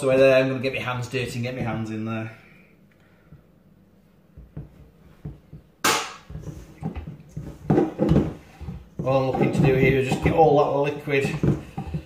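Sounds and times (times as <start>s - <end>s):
dough mixed in steel bowl: 6.2s - 12.0s.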